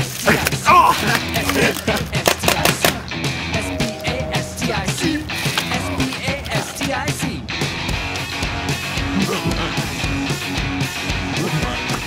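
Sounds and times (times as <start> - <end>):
rock music with fast drums: 0.0 - 12.0.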